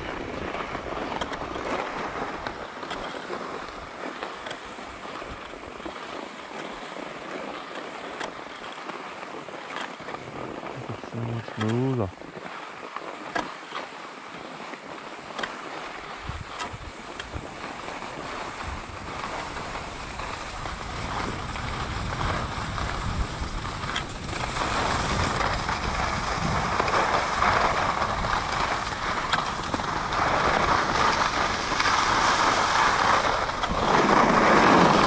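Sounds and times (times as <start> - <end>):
skis carving over snow: 0.0 - 35.0
wind rushing on microphone: 18.2 - 35.0.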